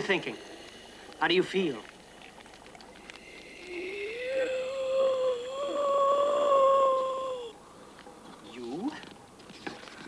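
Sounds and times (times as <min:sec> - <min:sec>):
long wavering wail: 0:03.6 - 0:07.6.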